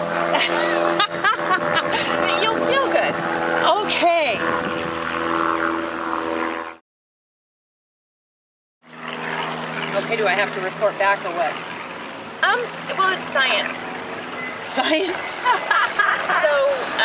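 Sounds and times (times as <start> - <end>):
steady motor-like hum: 0.0 - 6.8, 8.9 - 17.0.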